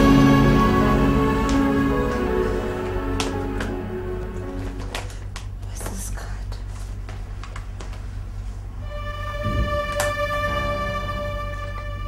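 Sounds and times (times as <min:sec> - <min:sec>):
papers and money rustling: 0:04.4 - 0:08.7.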